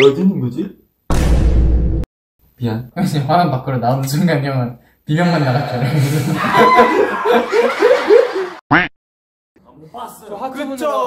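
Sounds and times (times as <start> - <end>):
young men laughing: 5.2 - 8.6.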